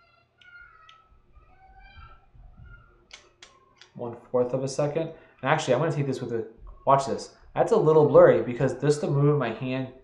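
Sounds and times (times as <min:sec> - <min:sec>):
children's calls from another room: 0:00.0 - 0:04.1.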